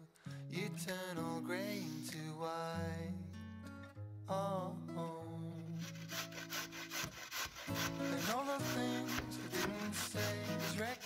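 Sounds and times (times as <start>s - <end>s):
carrot rasping on grater: 5.8s - 11.0s.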